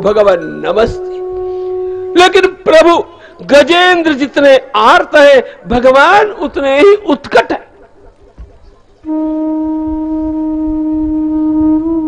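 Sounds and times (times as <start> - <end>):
reedy held instrument note: 1.0 - 2.2, 9.0 - 12.0.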